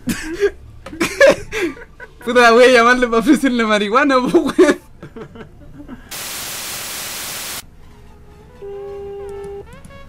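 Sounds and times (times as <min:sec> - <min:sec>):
television static hiss: 0:06.1 - 0:07.6.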